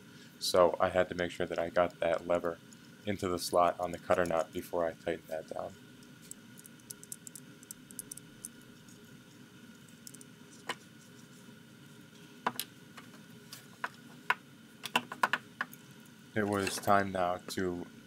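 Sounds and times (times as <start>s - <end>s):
small metal parts clicking: 6.2s - 8.6s.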